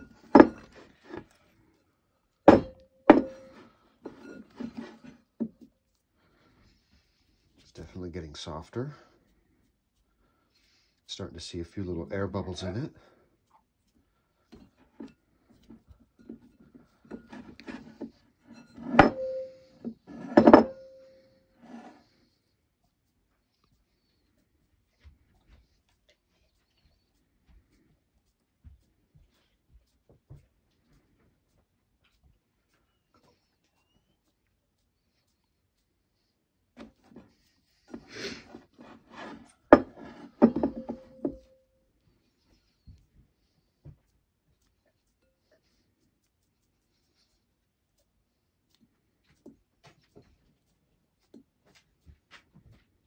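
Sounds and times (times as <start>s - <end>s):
glass bowl knocking on table: 2.5s - 3.4s, 18.8s - 19.5s, 39.8s - 41.4s
glass bowl ringing: 18.8s - 19.8s, 20.4s - 21.2s, 40.5s - 41.5s.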